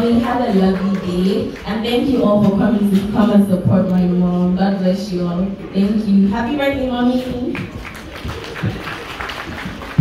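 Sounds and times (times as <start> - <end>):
audience applauding: 7.6 - 10.0.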